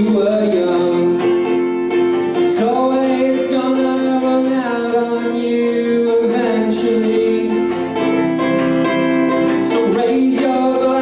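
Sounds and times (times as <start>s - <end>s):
acoustic guitar strumming: 0.0s - 11.0s
man singing: 0.0s - 11.0s.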